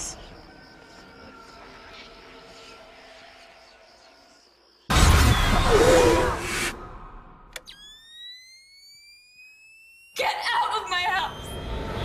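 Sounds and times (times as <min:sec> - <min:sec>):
rising electronic whine: 0:06.4 - 0:10.3, 0:11.2 - 0:12.0.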